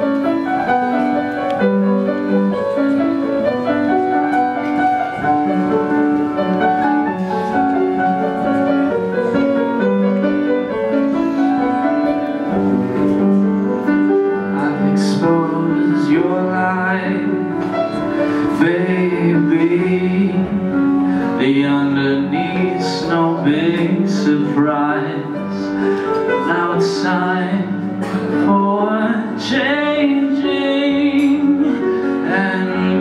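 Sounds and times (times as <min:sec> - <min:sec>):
live instrumental band: 0:00.0 - 0:33.0
slow held piano chords: 0:00.0 - 0:33.0
man singing into microphone: 0:14.4 - 0:33.0.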